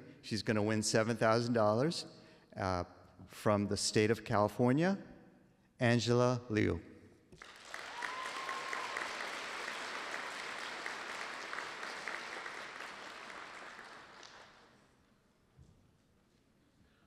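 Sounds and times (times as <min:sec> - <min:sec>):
audience applauding: 0:07.4 - 0:14.8.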